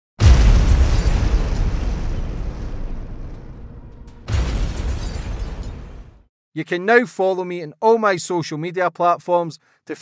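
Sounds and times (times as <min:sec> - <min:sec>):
deep rumble: 0:00.2 - 0:06.2
heavy boom impact: 0:00.2 - 0:06.3.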